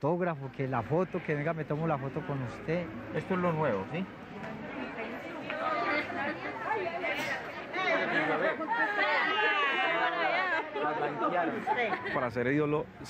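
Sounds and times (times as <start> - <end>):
indistinct chatter: 0.2 - 13.0.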